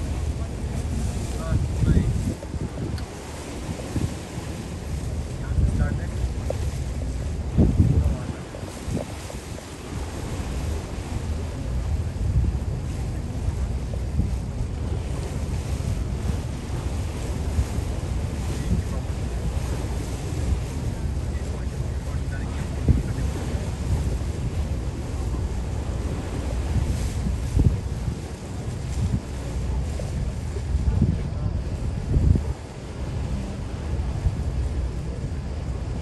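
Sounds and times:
wind buffeting microphone: 0.0 - 36.0.

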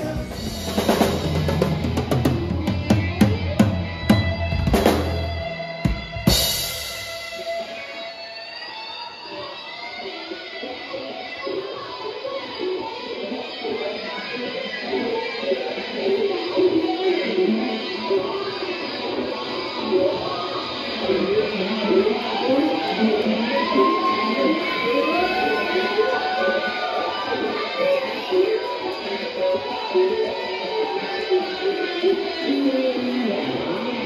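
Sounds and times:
drum kit: 0.0 - 8.0
bass guitar: 0.0 - 8.7
electric guitar: 0.0 - 34.0.

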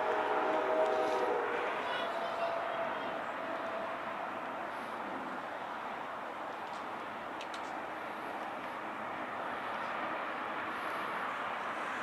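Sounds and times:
distant locomotive air horn: 0.0 - 4.3.

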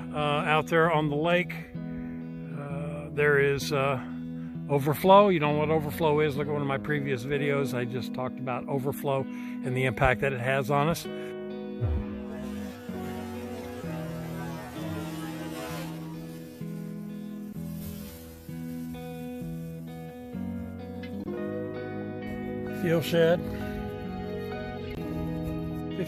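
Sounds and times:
soft plucked guitar music: 0.0 - 26.0.

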